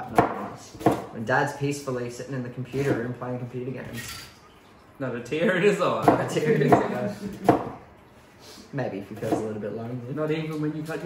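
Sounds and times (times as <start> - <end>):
knife chopping on plastic board: 0.0 - 1.1, 6.0 - 7.8.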